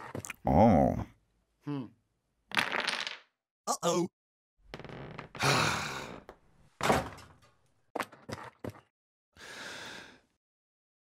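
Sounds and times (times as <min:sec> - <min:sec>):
person sighing: 0:01.6 - 0:01.9, 0:05.4 - 0:06.2.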